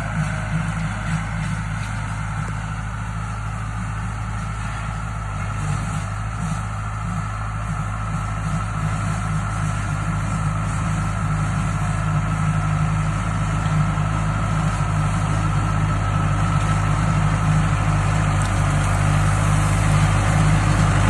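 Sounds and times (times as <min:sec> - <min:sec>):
tractor engine running: 0:00.0 - 0:21.0.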